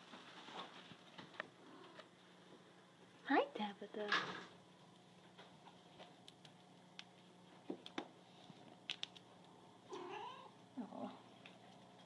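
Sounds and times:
cat meowing: 9.9 - 10.5.

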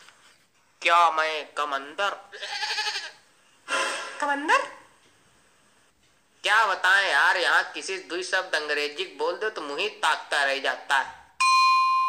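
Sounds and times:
wavering bleat-like cry: 2.3 - 3.2.

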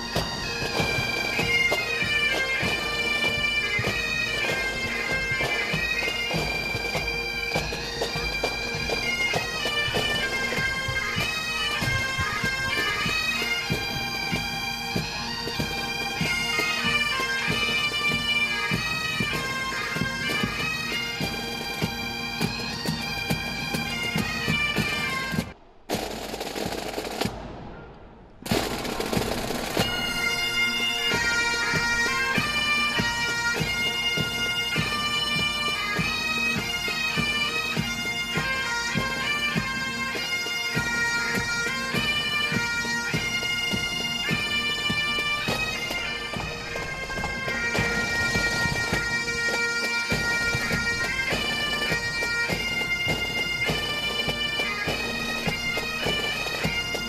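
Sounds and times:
bagpipes playing a tune: 0.0 - 25.6, 28.6 - 57.0.

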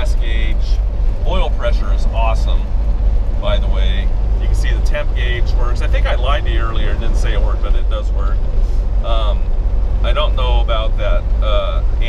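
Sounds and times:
voices talking: 0.0 - 2.7, 3.4 - 8.4, 9.0 - 12.0
road and wind noise: 0.0 - 12.0
truck engine rumble: 0.0 - 12.0.

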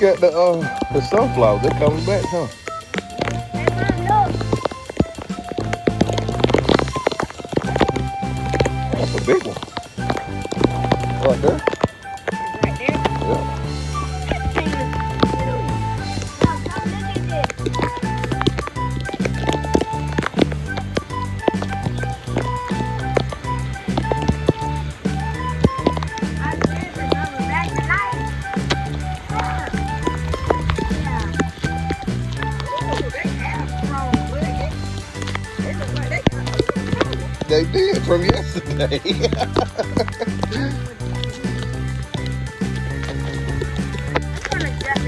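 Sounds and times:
background music with steady beat: 0.0 - 45.0.

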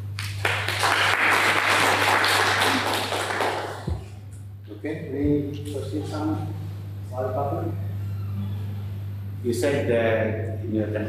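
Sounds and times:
low electrical hum: 0.0 - 11.0
audience applauding: 0.2 - 4.1.

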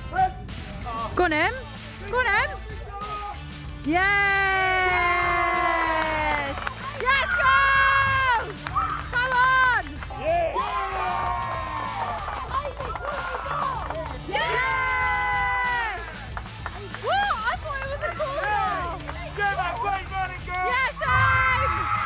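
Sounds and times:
background music: 0.0 - 22.0
people cheering and shouting: 2.6 - 22.0
people clapping: 4.1 - 22.0.

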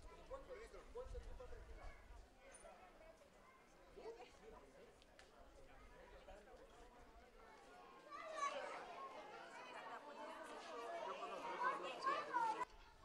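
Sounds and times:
children chattering: 7.2 - 13.0.

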